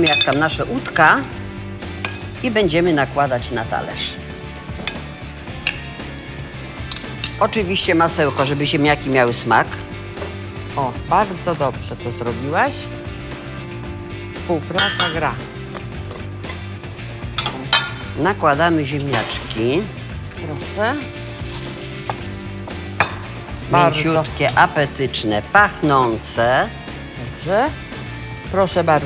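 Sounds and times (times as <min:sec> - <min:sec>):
metal utensil clinking on glass bowl: 0:00.0 - 0:00.6, 0:02.0 - 0:02.4, 0:04.8 - 0:06.2, 0:06.9 - 0:08.6, 0:14.8 - 0:15.4, 0:17.4 - 0:18.1, 0:23.0 - 0:23.2
background music: 0:00.0 - 0:29.0.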